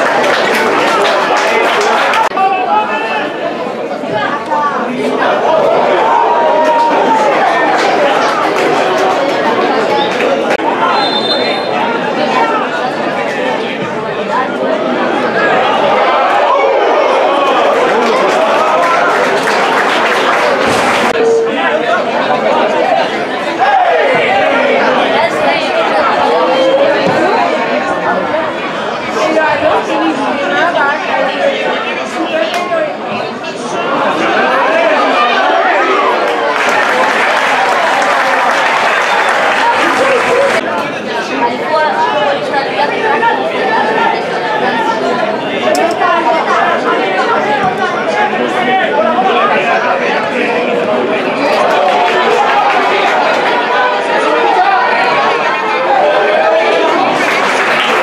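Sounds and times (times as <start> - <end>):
crowd voices talking and calling: 0.0 - 58.0.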